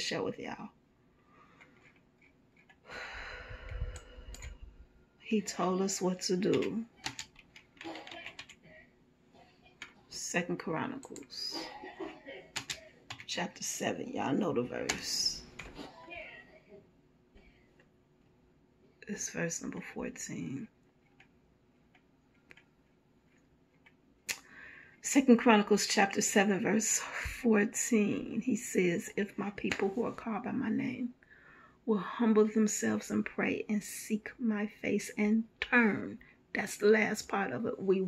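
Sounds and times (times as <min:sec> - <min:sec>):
intake of breath: 0:02.8 - 0:04.8, 0:31.2 - 0:31.8
person speaking: 0:05.3 - 0:16.6, 0:25.1 - 0:31.1.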